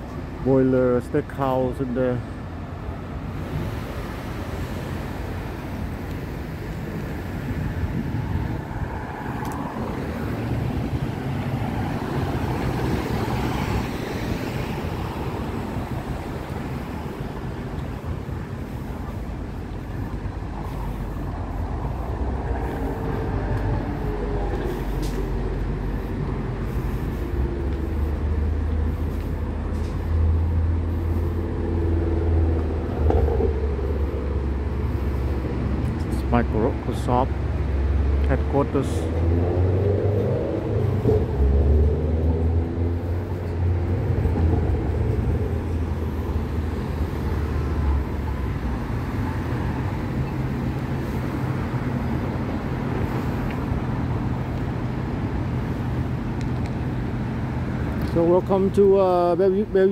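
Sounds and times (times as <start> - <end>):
cars passing on road: 0.0 - 59.9
heavy vehicle engine rumbling: 0.0 - 59.9.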